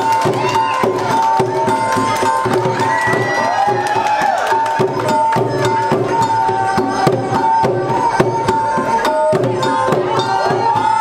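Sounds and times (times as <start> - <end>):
crowd noise: 0.0 - 11.0
drums beating quick rhythm: 0.0 - 11.0.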